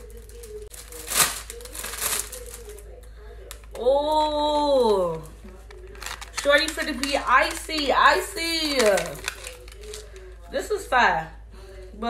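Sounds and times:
plastic packaging crinkling: 0.0s - 3.8s, 4.5s - 10.5s.

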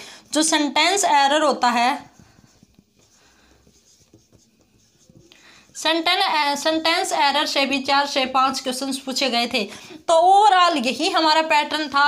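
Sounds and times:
marker writing on a whiteboard: 0.0s - 12.0s
woman speaking: 0.2s - 2.2s, 5.8s - 12.0s.

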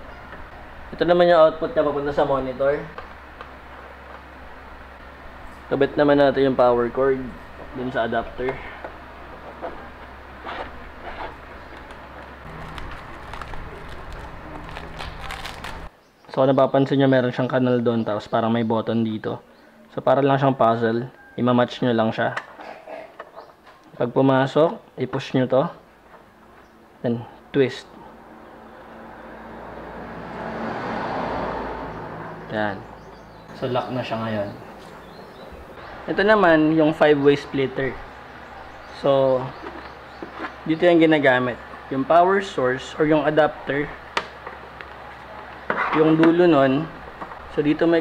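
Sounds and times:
steady low hum: 0.0s - 15.9s, 32.2s - 48.0s
vehicle passing: 12.4s - 15.9s, 28.0s - 48.0s.

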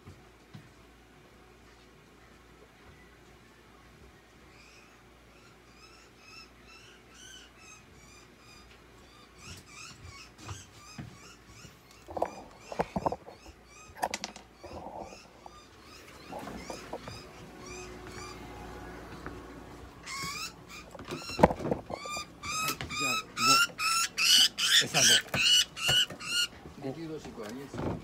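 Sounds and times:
budgerigar chirping: 4.5s - 14.0s, 14.6s - 18.7s, 20.0s - 26.6s.

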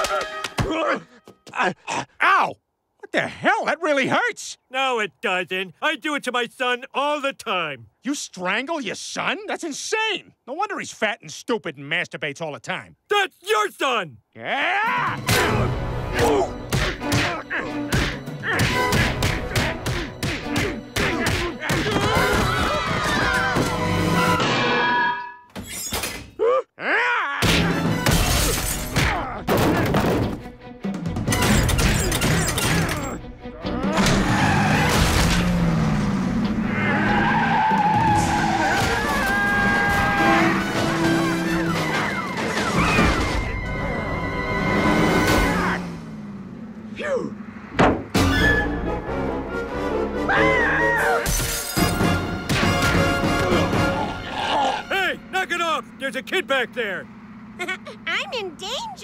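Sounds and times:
window glass shattering: 27.6s - 29.9s, 34.0s - 35.5s, 51.2s - 52.9s
glass shattering: 28.0s - 29.0s, 51.2s - 52.1s
loud background music: 48.2s - 54.4s.

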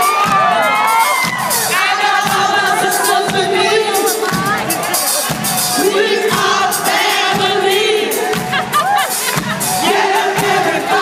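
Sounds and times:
live disco band with singers: 0.0s - 11.0s.

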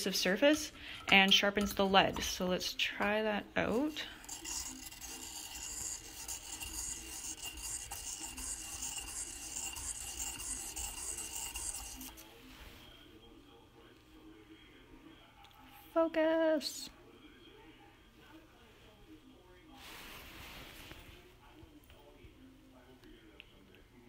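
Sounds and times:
pencil lead scratchy grinding: 4.0s - 12.2s.

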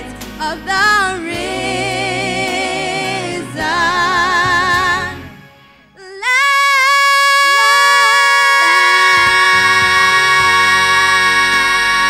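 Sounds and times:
vocal trio singing in harmony: 0.0s - 12.0s.

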